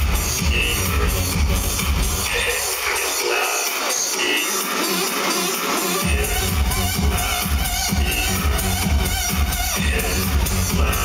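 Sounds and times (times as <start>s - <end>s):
live electronic dance-rock music: 0.0s - 11.0s.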